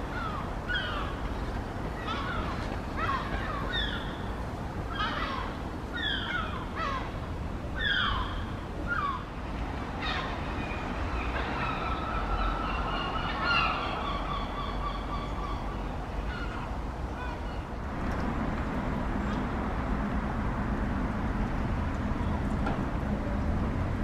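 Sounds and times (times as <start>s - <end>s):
birds calling: 0.0s - 17.7s.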